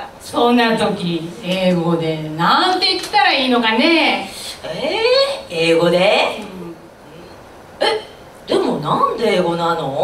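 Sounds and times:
woman speaking into microphone: 0.0 - 10.0.

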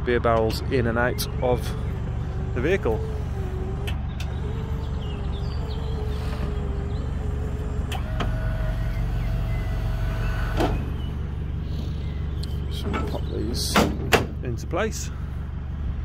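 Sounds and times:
wheelchair lift motor whine: 1.1 - 13.2
lift platform clunks: 10.4 - 11.0, 12.8 - 14.4.

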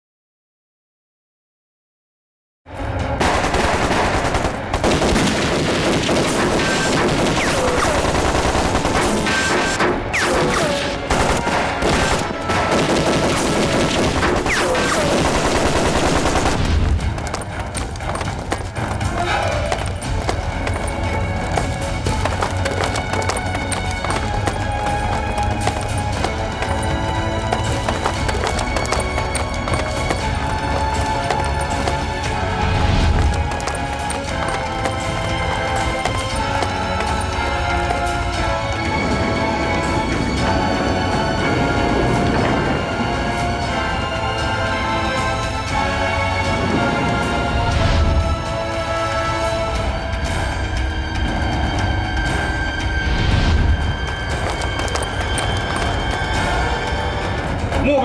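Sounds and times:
dramatic film score: 2.7 - 58.0
rapid gunfire: 3.2 - 17.1.

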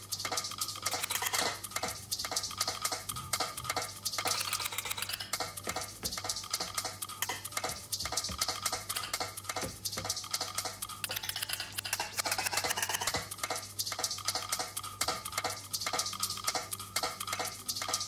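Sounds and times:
fingers tapping controller pads: 0.0 - 18.0.

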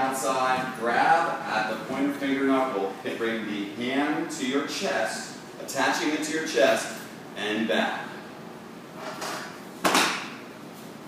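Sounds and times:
hands slapping uniforms: 9.8 - 10.4.

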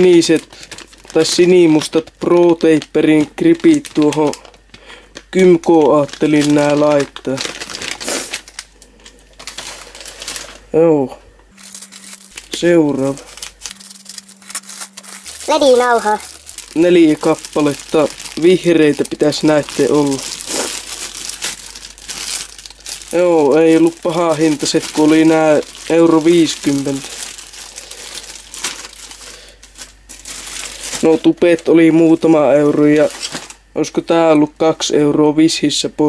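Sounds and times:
plastic crinkling: 0.0 - 10.7, 11.5 - 33.7.

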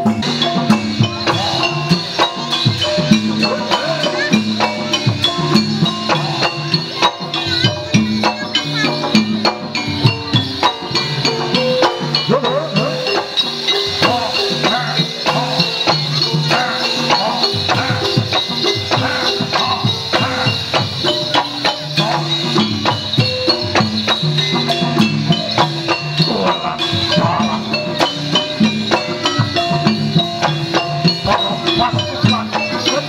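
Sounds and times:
ankle bells jingling: 0.0 - 33.0
drum strokes: 0.0 - 33.0
metallophones playing melody: 0.0 - 33.0.

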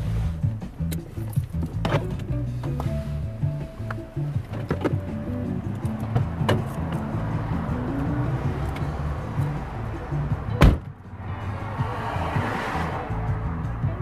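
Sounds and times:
music playing in a car: 0.0 - 14.0
car door slamming: 4.4 - 5.2, 6.1 - 7.1, 10.5 - 11.0.

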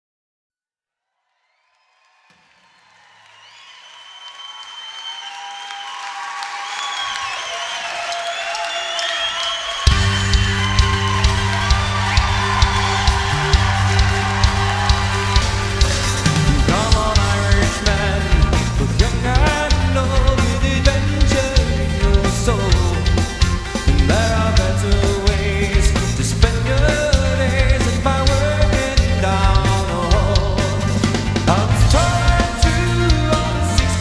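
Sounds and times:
drums and bass beat: 9.8 - 34.0
live rock band playing: 9.8 - 34.0
ornamented instrumental melody: 9.9 - 34.0.

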